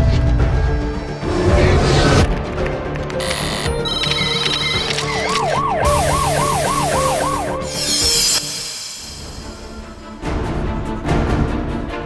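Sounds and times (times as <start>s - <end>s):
news theme music: 2.3s - 11.8s
siren wailing: 3.9s - 8.4s.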